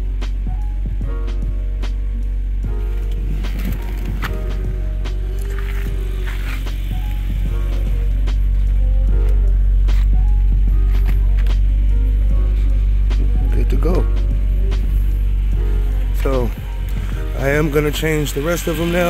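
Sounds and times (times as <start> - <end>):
background music: 0.0 - 19.0
car engine idling: 0.0 - 19.0.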